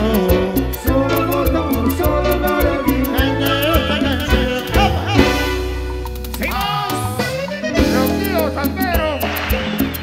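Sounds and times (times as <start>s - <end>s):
sliding melodic lead: 0.0s - 10.0s
steady bass line: 0.0s - 10.0s.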